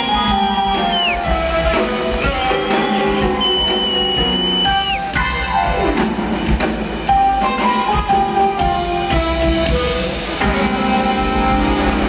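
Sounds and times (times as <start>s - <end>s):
saxophone: 0.0s - 5.8s
drum kit: 0.0s - 12.0s
jazz combo playing: 0.0s - 12.0s.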